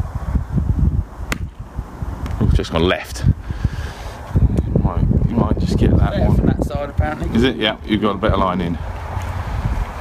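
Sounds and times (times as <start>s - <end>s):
wind rumble on microphone: 0.0s - 10.0s
golf club striking ball: 1.3s - 1.6s.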